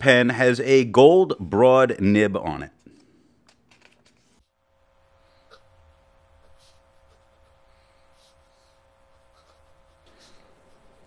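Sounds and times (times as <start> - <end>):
fountain pen scratching on paper: 5.5 - 11.0.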